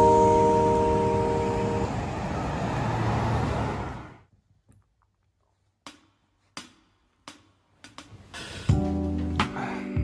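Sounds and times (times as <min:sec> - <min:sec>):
background music chord: 0:00.0 - 0:02.4, 0:08.7 - 0:10.0
road traffic: 0:00.0 - 0:04.3.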